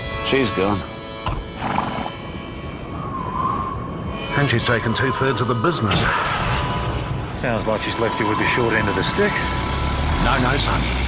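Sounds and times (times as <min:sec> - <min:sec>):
heavy truck engine rumble: 0:05.3 - 0:11.0.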